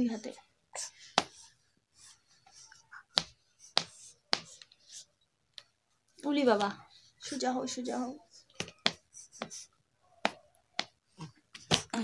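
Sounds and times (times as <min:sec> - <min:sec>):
hand slapping: 0:03.1 - 0:04.7, 0:10.2 - 0:12.0.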